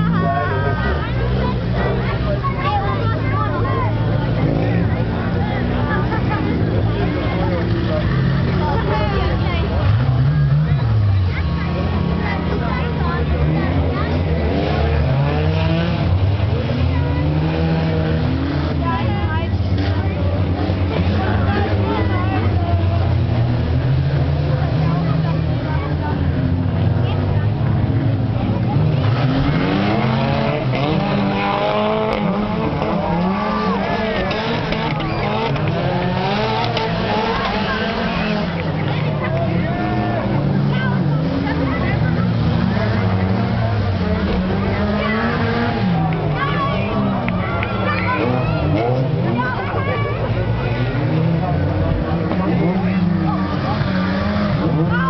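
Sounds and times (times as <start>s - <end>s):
spectators talking: 0.0s - 55.0s
stock car engines revving: 0.0s - 55.0s.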